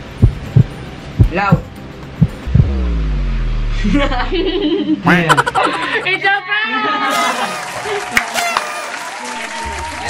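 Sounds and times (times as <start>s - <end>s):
heartbeat thumping: 0.0s - 3.2s
deep humming tone: 0.0s - 5.0s.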